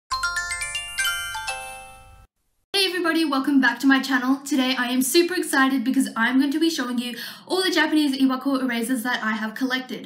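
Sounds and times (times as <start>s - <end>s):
bell-like chime jingle: 0.1s - 2.3s.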